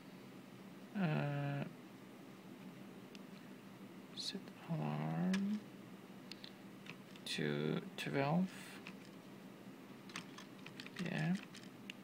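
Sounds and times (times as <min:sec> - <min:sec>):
keyboard typing: 0:08.8 - 0:09.2, 0:10.1 - 0:11.7.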